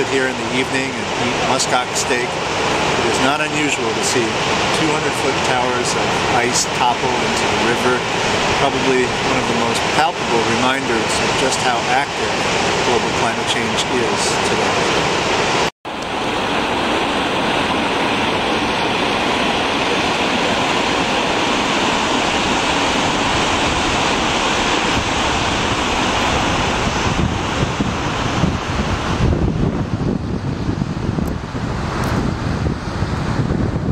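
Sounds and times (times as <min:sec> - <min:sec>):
river rushing: 0:00.0 - 0:33.9
wind buffeting microphone: 0:00.0 - 0:33.9.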